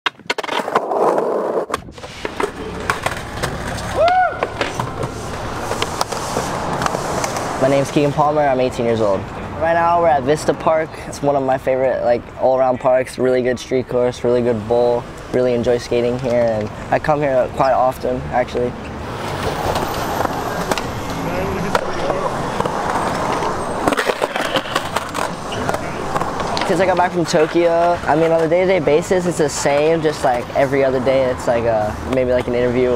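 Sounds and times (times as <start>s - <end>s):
skateboard clacks: 0.1s - 8.2s, 19.2s - 30.5s, 31.4s - 32.9s
skateboard wheels rolling on concrete: 0.1s - 32.9s.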